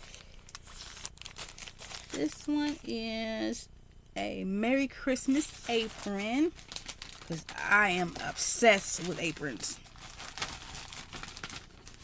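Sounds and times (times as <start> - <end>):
plastic bag crinkling: 0.0 - 3.0, 5.2 - 12.0.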